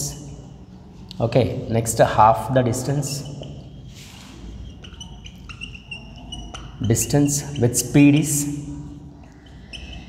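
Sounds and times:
whiteboard marker squeaking: 0:02.8 - 0:10.0.

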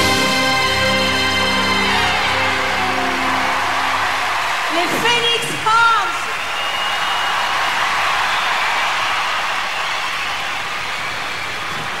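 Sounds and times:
audience applauding: 0:00.0 - 0:12.0.

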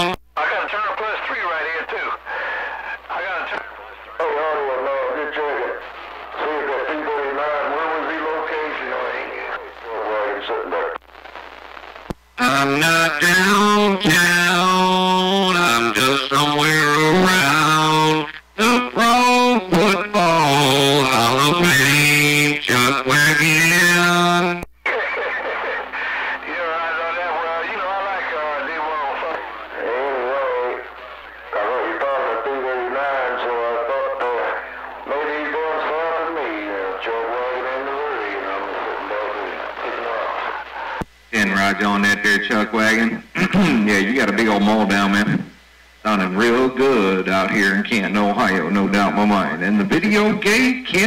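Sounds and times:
thin sung voice over radio: 0:00.0 - 0:11.0, 0:12.4 - 0:51.0
faint steady hum: 0:00.0 - 0:51.0
man singing over radio: 0:00.0 - 0:51.0.

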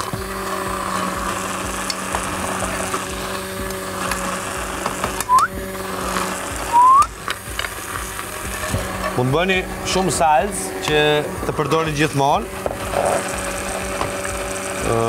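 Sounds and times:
immersion blender whirring: 0:00.0 - 0:15.0
short rising squeals: 0:06.7 - 0:07.2.

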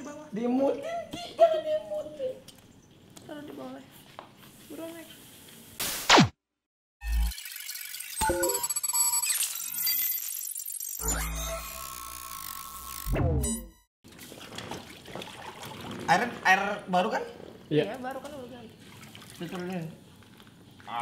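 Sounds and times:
chiming tones: 0:08.2 - 0:09.4, 0:11.0 - 0:12.0.

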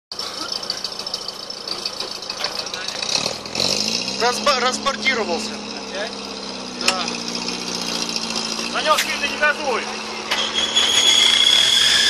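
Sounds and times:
off-road vehicle engine revving: 0:00.2 - 0:12.0.

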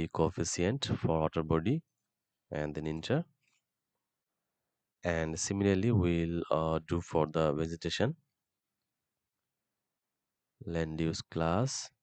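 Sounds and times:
person speaking: 0:02.6 - 0:03.2, 0:05.1 - 0:08.0.

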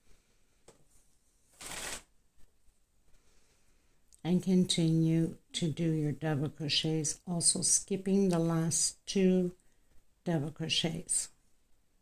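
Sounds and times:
thread and fabric rustling: 0:00.8 - 0:02.1.

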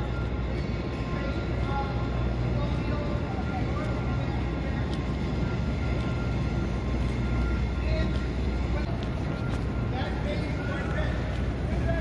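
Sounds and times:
low city rumble: 0:00.0 - 0:12.0
voices of passing crowds: 0:00.0 - 0:12.0.

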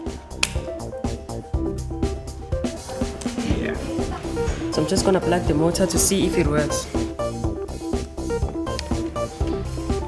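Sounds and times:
snapping percussive beat: 0:00.0 - 0:01.3
plucked background music: 0:00.0 - 0:10.0.

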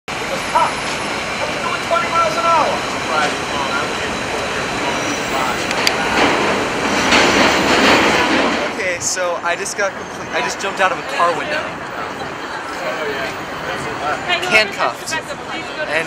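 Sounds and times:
people's voices: 0:00.1 - 0:16.0
traffic rushing: 0:00.1 - 0:16.0.

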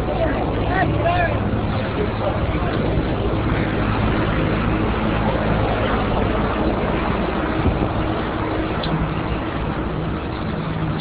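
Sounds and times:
faint low engine hum: 0:00.0 - 0:11.0.

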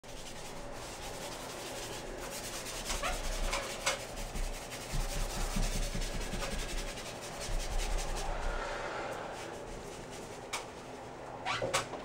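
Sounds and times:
paint applicator rubbing on wall: 0:00.0 - 0:11.6.

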